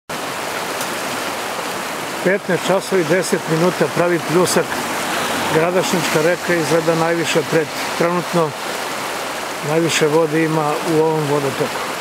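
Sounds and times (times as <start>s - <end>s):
river water rushing: 0.1s - 12.0s.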